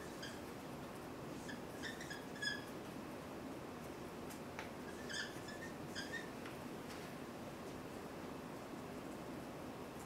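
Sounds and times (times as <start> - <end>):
marker squeaking on whiteboard: 1.4 - 2.7, 4.8 - 6.4.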